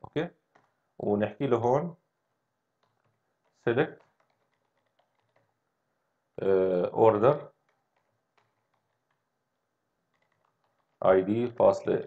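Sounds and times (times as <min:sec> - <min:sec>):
keyboard keystrokes: 0:03.9 - 0:05.6, 0:07.6 - 0:09.2, 0:10.1 - 0:11.6.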